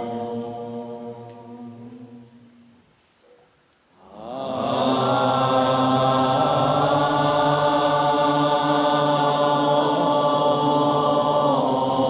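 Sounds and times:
deep chanted mantra tone: 0.0s - 2.8s, 4.0s - 12.0s.

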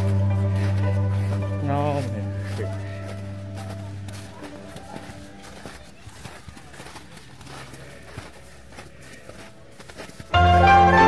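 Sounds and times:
background music: 0.0s - 5.4s, 10.3s - 11.0s
faint voices: 0.0s - 10.4s
footsteps on packed snow: 0.0s - 11.0s.

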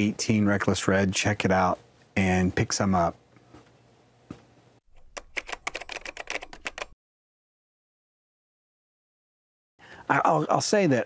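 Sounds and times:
rapid typing key clicks: 5.0s - 7.0s.

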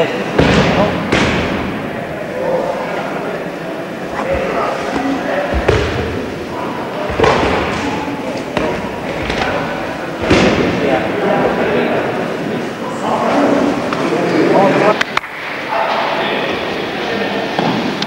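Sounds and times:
low voices murmuring: 0.0s - 18.0s
body thumping on training mat: 4.2s - 6.4s, 7.1s - 9.6s.

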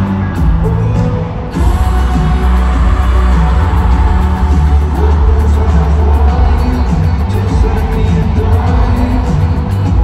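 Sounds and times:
live pop band over loudspeakers: 0.0s - 10.0s.

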